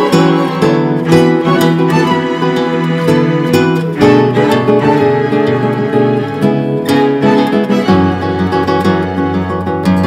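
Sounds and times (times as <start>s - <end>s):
bowed strings: 0.0s - 10.0s
plucked guitar notes: 0.0s - 10.0s.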